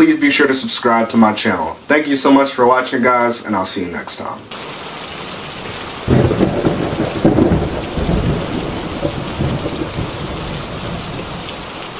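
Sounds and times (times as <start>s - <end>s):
steady rain: 0.0s - 11.9s
thunder rumbling: 5.5s - 11.9s.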